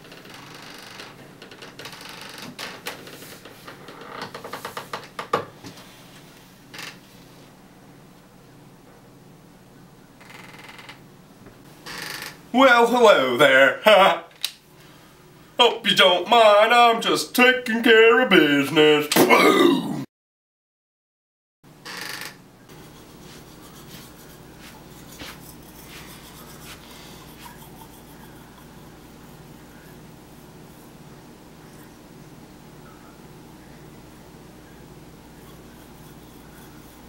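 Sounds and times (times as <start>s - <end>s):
faint low hum: 22.6s - 37.0s
rapid rasping rustle: 22.7s - 31.0s
toothbrush scrubbing teeth: 22.7s - 31.0s, 35.4s - 37.0s.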